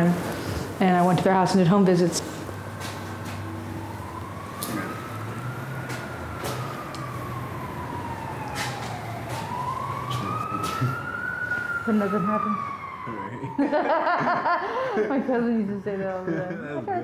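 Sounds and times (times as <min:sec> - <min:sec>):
siren wailing: 0:00.0 - 0:16.2.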